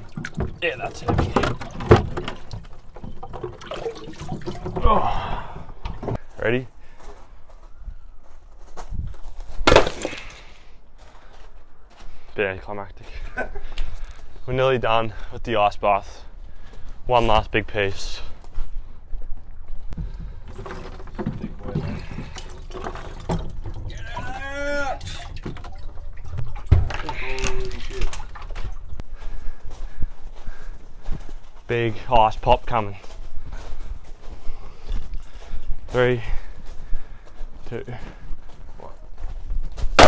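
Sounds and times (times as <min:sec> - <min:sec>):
water sloshing and dripping: 0:00.0 - 0:06.2, 0:20.0 - 0:29.0
ice shards scattering: 0:09.7 - 0:10.4
ice slab shattering on concrete: 0:09.7 - 0:10.4.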